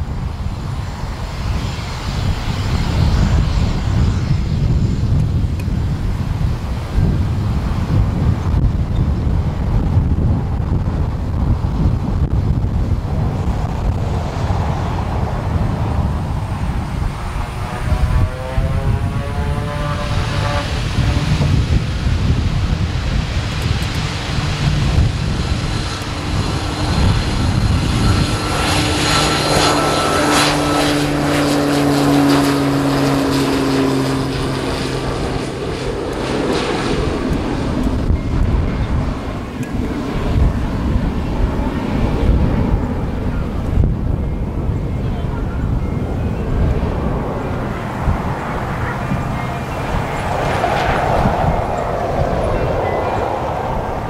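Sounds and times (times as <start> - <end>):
turboprop aircraft taking off: 0.0 - 54.0.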